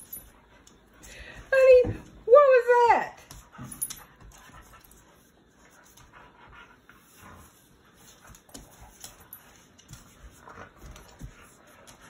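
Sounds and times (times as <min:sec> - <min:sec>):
dogs panting: 0:03.3 - 0:12.0
dogs scuffling: 0:06.9 - 0:12.0.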